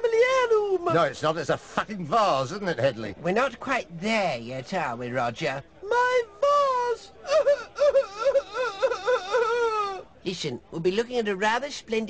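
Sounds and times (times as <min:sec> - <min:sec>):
woman wailing and sobbing: 0:05.8 - 0:10.1.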